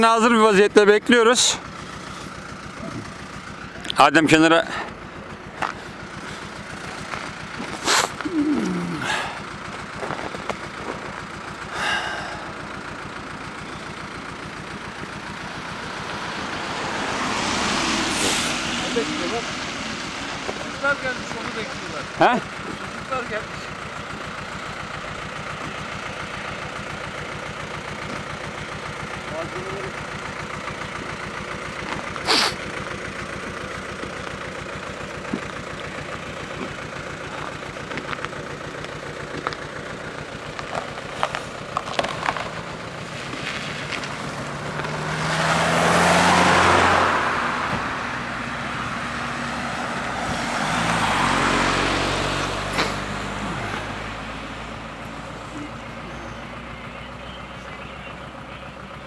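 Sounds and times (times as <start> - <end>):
road vehicle passing: 0.0 - 59.0
roadside background noise: 0.0 - 59.0.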